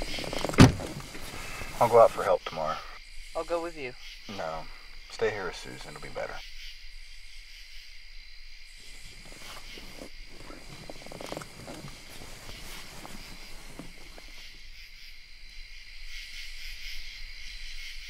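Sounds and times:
rustling noises: 0.0 - 2.4, 8.8 - 14.6
crickets trilling: 0.0 - 18.0.

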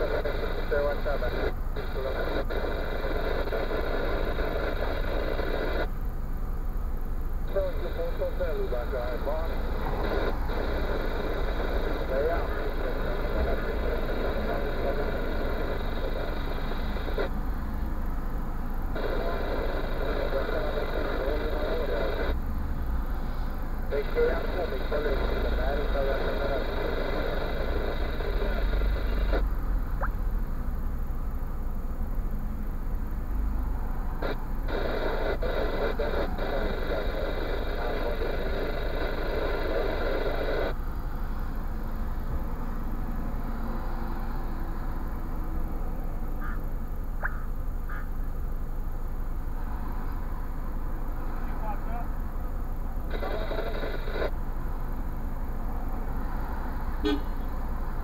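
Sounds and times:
muffled radio voices: 0.0 - 5.9, 7.2 - 17.4, 18.8 - 22.4, 23.0 - 30.2, 34.1 - 40.8, 51.1 - 54.4.

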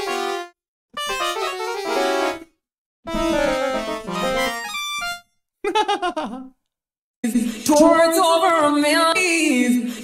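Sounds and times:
man laughing: 5.6 - 6.6.

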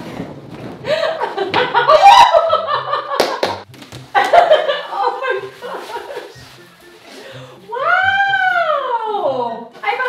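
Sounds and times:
woman laughing loudly: 0.9 - 3.4, 4.2 - 6.4.

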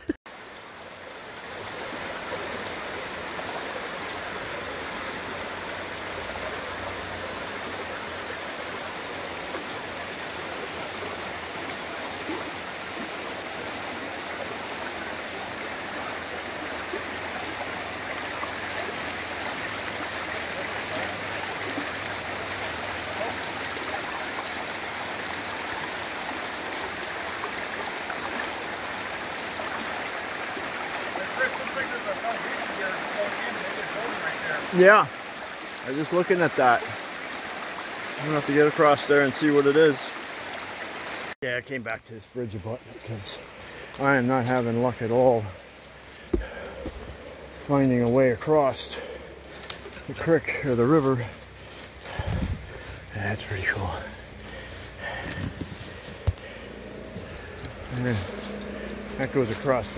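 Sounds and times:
water rushing over stones: 0.0 - 41.9, 42.5 - 59.9.

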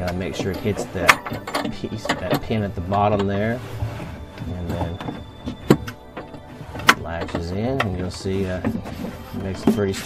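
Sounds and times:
metal gate latch clicking: 0.0 - 3.0.

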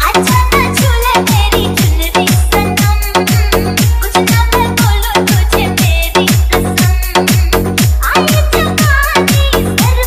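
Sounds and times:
dance music with hard bass: 0.0 - 10.0.

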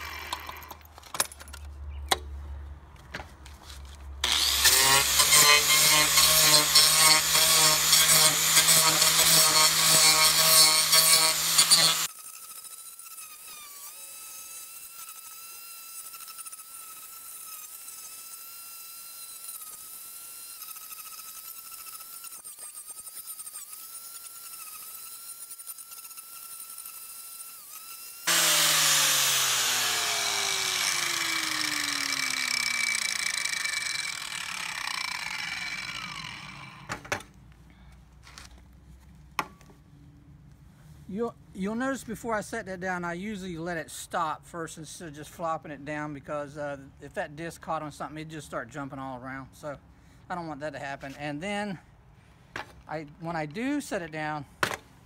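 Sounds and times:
angle grinder carving wood: 0.0 - 0.9, 4.2 - 37.2.

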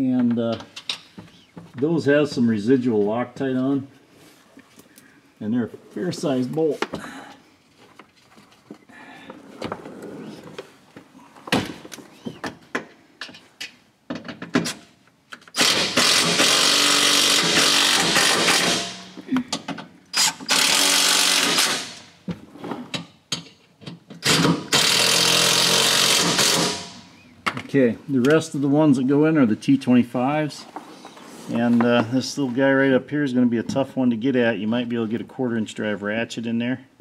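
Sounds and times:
cordless driver driving bolts: 14.2 - 22.0, 23.3 - 27.0.

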